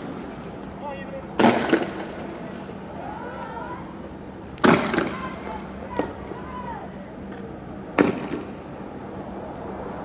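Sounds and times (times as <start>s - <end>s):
tear gas launcher bang: 1.4s - 2.2s, 4.6s - 5.3s, 8.0s - 8.5s.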